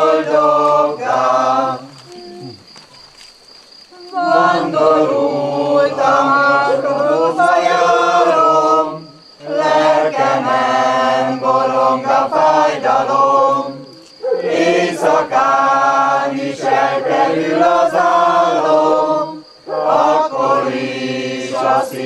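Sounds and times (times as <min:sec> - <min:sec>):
group singing a hymn unaccompanied: 0:00.0 - 0:02.6, 0:04.0 - 0:22.0.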